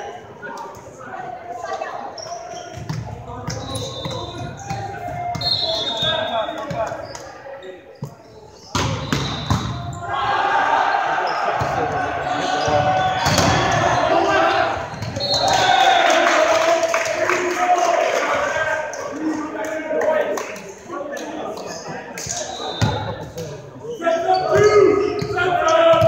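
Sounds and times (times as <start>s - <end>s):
players shouting: 8.8s - 20.4s, 23.9s - 26.0s.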